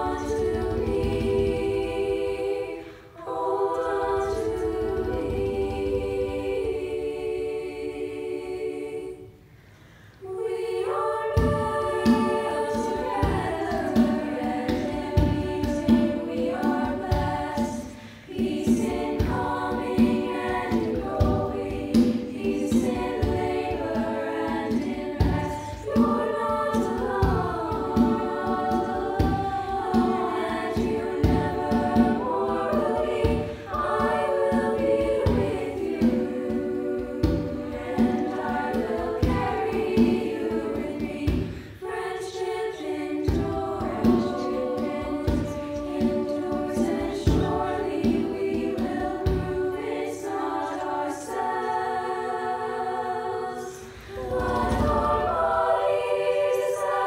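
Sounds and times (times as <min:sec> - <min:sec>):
girls choir singing: 0:00.0 - 0:57.0.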